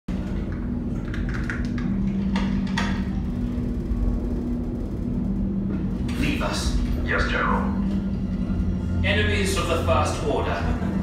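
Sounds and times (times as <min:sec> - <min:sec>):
deep rumble: 0:00.1 - 0:11.0
steady low hum: 0:00.1 - 0:11.0.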